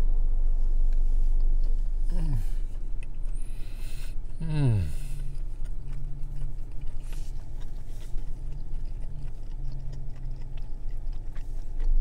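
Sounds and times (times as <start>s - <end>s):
car engine idling: 0.0s - 12.0s
person humming while eating: 2.0s - 2.8s, 3.4s - 6.7s.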